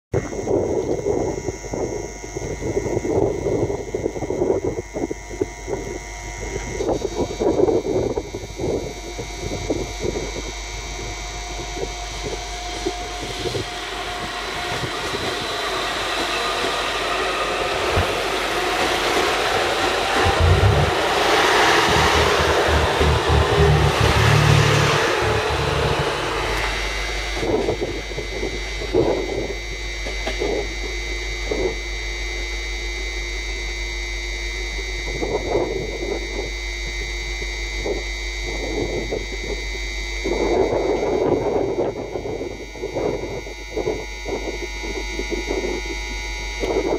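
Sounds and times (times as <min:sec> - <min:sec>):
faint rising whine: 0:00.2 - 0:37.1
train running noise: 0:04.8 - 0:31.5
train wheels knocking: 0:13.6 - 0:25.6.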